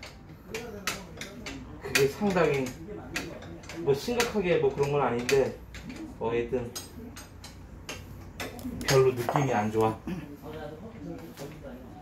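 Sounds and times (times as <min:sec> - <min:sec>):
hand tools clicking on metal: 0:00.0 - 0:09.9.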